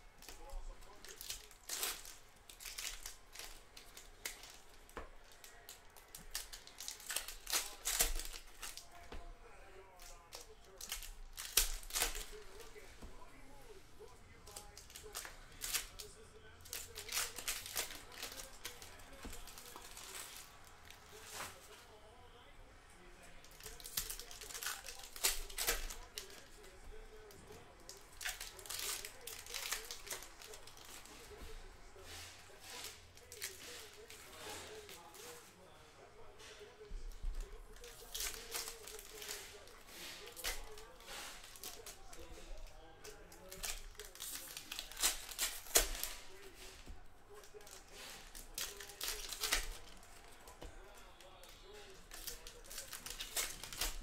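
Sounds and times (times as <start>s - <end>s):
foil wrappers tearing and crinkling: 0.0s - 13.3s, 14.0s - 21.8s, 23.4s - 35.4s, 37.3s - 54.0s
cards riffled and handled: 0.0s - 22.0s, 23.3s - 35.6s, 36.4s - 54.0s.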